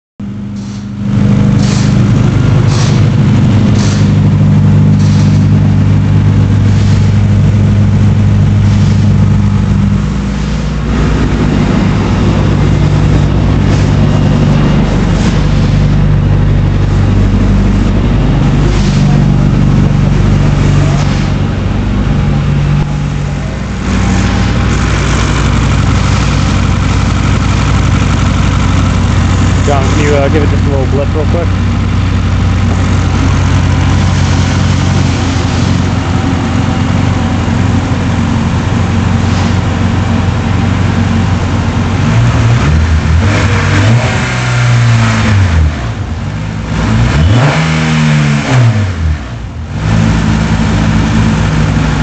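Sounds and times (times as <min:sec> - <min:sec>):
car engine starting and idling: 0:00.2 - 0:52.0.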